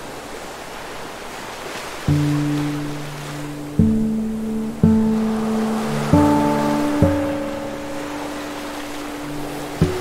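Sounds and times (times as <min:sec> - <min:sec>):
ocean waves breaking: 0:00.0 - 0:10.0
acoustic guitar chords: 0:02.1 - 0:10.0.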